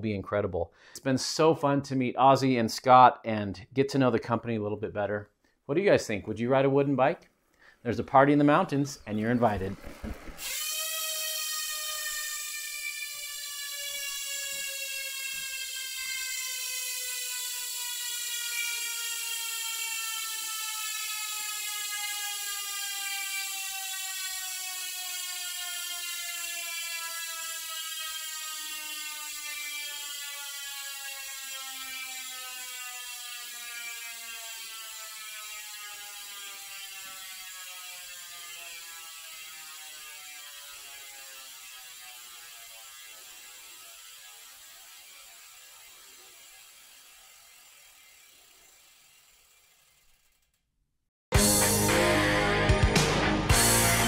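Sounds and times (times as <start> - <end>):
bike freehub ratchet whir: 9.2 - 50.7.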